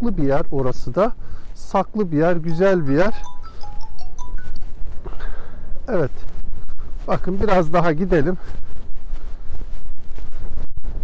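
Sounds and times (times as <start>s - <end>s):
wind on microphone: 4.4s - 11.0s.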